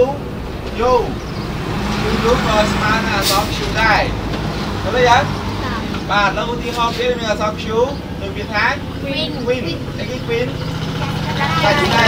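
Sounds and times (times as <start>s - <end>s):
low motor rumble: 0.0s - 12.0s.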